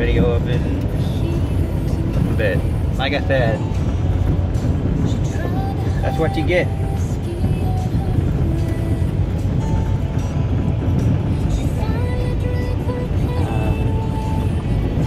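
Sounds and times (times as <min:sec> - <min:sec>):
car tyres and engine rumble: 0:00.0 - 0:15.0
music: 0:00.0 - 0:15.0.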